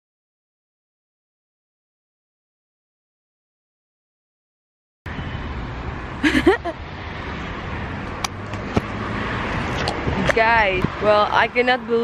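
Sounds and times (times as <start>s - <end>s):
road traffic rumble: 5.1s - 12.0s.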